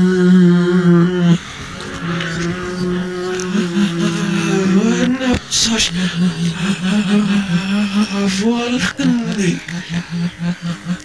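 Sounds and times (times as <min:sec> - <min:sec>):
low drone of held tones: 0:00.0 - 0:11.0.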